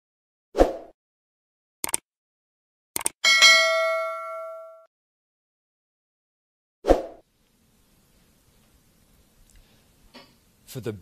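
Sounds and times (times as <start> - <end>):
quick clicks: 1.8 - 2.0, 3.0 - 3.2
notification bell ding: 3.2 - 4.9.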